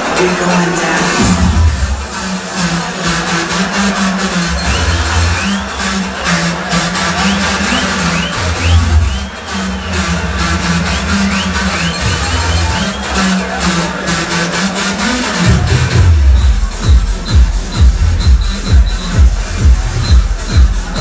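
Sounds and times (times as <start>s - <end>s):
electronic dance music: 0.0s - 21.0s.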